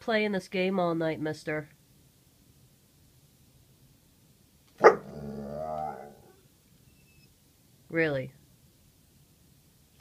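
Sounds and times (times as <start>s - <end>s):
dog barking: 4.8s - 5.2s
dog wavering vocal sound: 4.8s - 6.4s.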